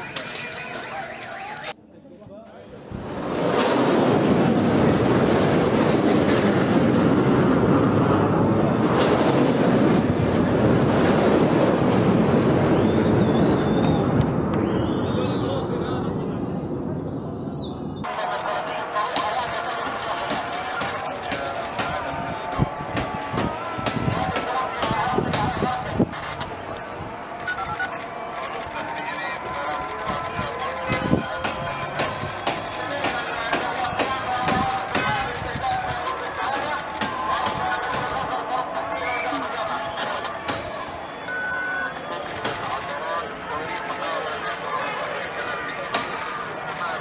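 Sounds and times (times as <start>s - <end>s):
voices calling out: 0.0s - 1.8s, 18.0s - 47.0s
people talking: 0.0s - 2.8s, 15.1s - 16.6s, 18.1s - 47.0s
sharp bangs: 27.5s - 38.6s
short high beep: 41.3s - 42.0s.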